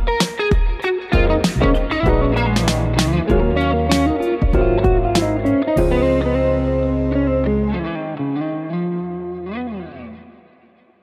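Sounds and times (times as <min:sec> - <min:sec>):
electric guitar note bending: 0:01.2 - 0:10.7.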